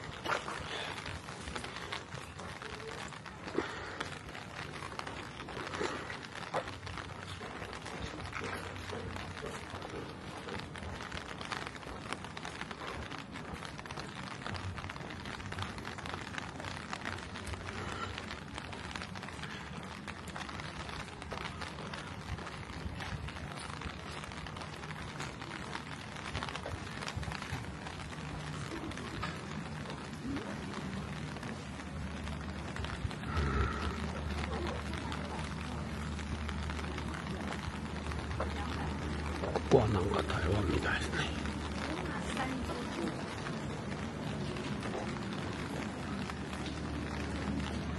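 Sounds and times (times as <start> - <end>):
faint voices: 0.0 - 47.9
footsteps on wet ground: 0.0 - 47.9
light rain on wet pavement: 0.0 - 47.9.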